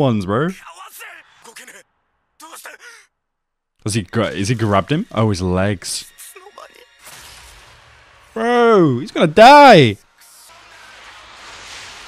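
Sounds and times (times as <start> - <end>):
man talking: 0.0 - 1.8, 2.4 - 3.1, 3.8 - 6.2, 8.4 - 10.0
character speaking strained line: 2.4 - 3.1, 8.4 - 10.0.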